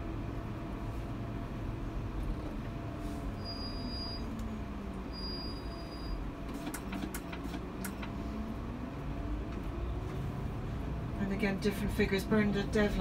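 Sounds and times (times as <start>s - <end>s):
bus engine running: 0.0s - 13.0s.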